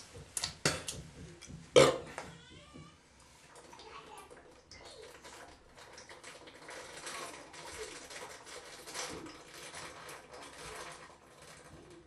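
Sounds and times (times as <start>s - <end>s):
person gulping and swallowing: 1.8s - 2.1s
liquid glugging and fizzing in bottle: 3.6s - 12.0s.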